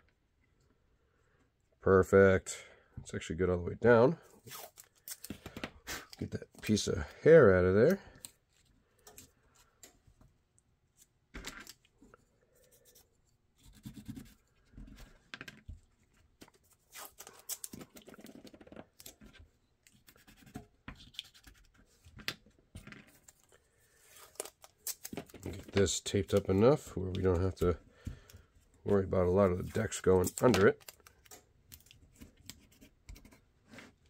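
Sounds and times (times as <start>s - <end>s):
tape ripping and scratching: 4.4s - 5.3s, 16.7s - 19.2s.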